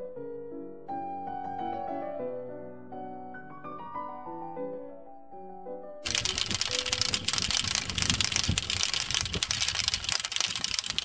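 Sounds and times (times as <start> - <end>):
crackling rustle on microphone: 6.0 - 11.0.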